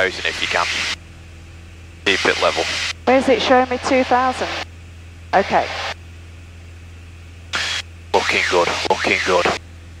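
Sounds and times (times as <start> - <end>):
aircraft piston engine droning: 0.0 - 10.0
headset intercom hiss: 2.1 - 4.6, 5.4 - 6.0, 7.6 - 9.6.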